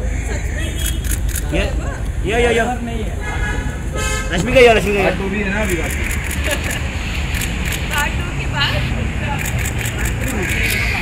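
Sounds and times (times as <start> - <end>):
camera shutters clicking: 0.8 - 1.5, 5.6 - 8.0, 9.4 - 10.9.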